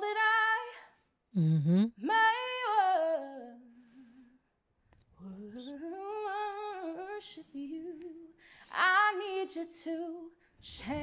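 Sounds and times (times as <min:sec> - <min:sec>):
woman singing unaccompanied: 0:00.0 - 0:00.8, 0:02.0 - 0:04.0, 0:05.2 - 0:11.0.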